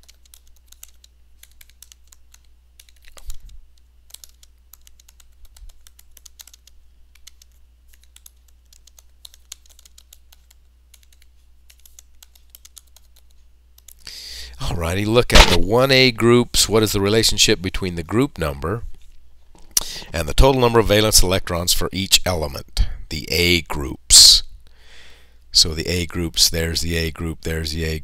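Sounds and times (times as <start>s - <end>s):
low steady hum: 0.0s - 28.0s
loud thump: 15.3s - 15.7s.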